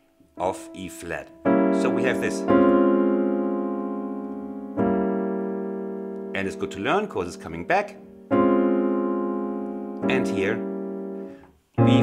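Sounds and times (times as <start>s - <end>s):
piano chords ringing: 0.0s - 12.0s.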